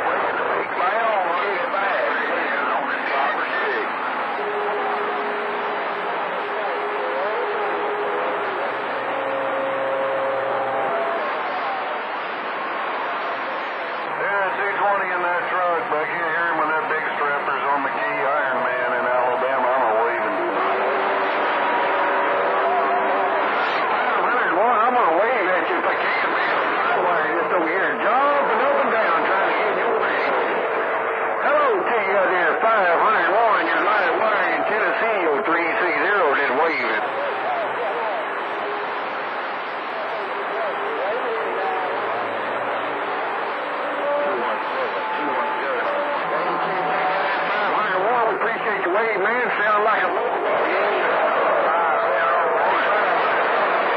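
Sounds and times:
overlapping radio voices: 0.0 - 53.9.

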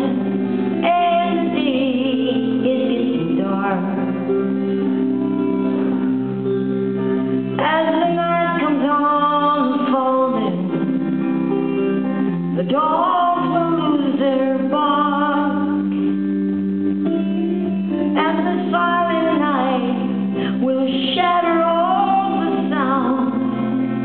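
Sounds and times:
woman singing: 0.0 - 5.0, 7.5 - 16.1, 18.0 - 24.0
electric guitar chords: 0.0 - 24.0.

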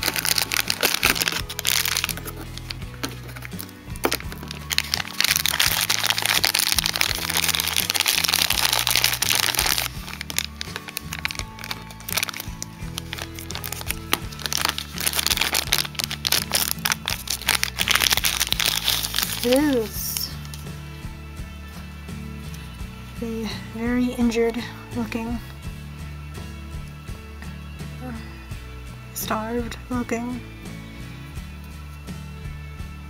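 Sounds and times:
plastic bag crinkling and tearing: 0.0 - 20.6
background music: 0.0 - 33.0.

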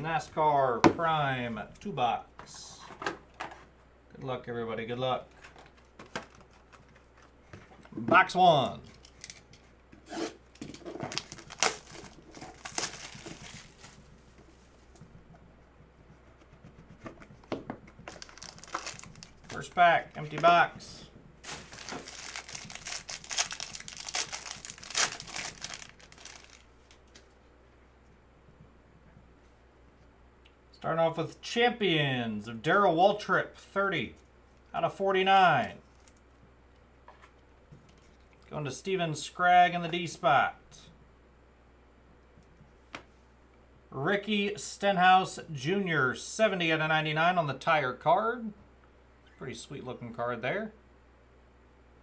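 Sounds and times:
faint steady hum: 0.0 - 52.0
plastic wrap crinkling and tearing: 10.6 - 14.1, 18.1 - 20.3, 21.4 - 27.0.

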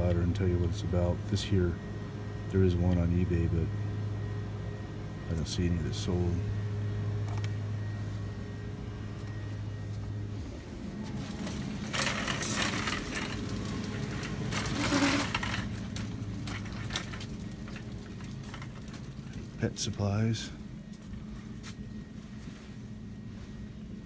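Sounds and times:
steady low hum: 0.0 - 24.0.

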